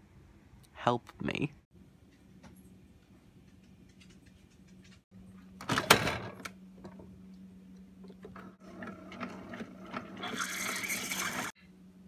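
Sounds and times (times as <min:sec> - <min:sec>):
coffee maker pump running: 0:08.0 - 0:11.5.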